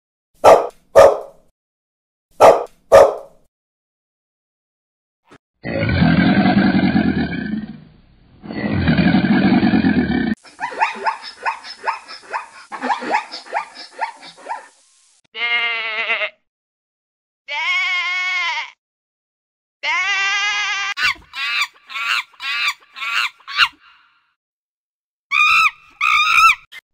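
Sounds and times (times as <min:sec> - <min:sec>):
dog barking: 0:00.4 - 0:01.4, 0:02.4 - 0:03.4, 0:10.6 - 0:14.7
crocodile low calls: 0:05.6 - 0:07.8, 0:08.4 - 0:10.4
sheep bleating: 0:15.4 - 0:16.4, 0:17.5 - 0:18.8, 0:19.8 - 0:20.8.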